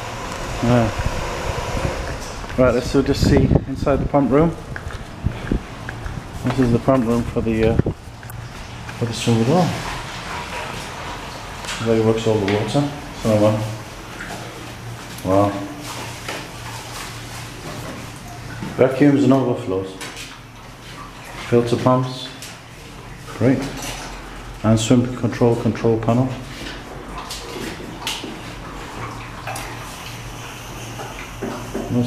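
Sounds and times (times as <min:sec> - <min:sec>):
hiss of water: 0:00.0 - 0:02.4, 0:29.6 - 0:32.0
pool filter pump humming: 0:00.0 - 0:32.0
water rushing through pipes: 0:00.0 - 0:32.0.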